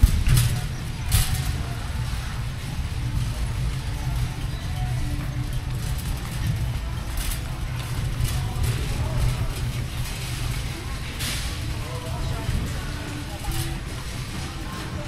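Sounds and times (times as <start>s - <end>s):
indistinct voices: 0.0s - 15.0s
shopping cart wheels rumbling: 0.0s - 15.0s.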